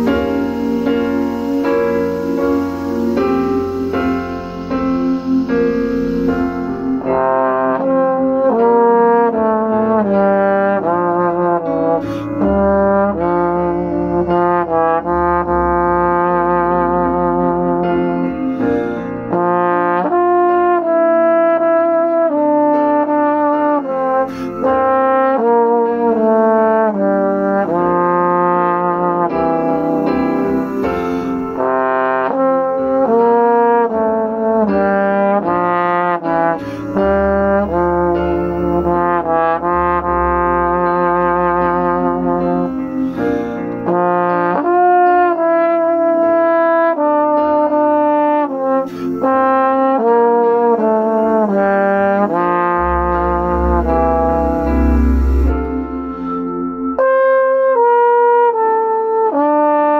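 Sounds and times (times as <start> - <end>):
digital piano bass notes: 0.0 - 59.9
trombone melody: 0.0 - 59.9.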